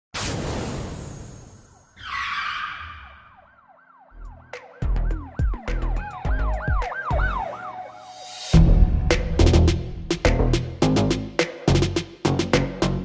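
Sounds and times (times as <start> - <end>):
siren-like wailing tone: 1.7 - 8.6
heavy bass hits: 8.6 - 11.9.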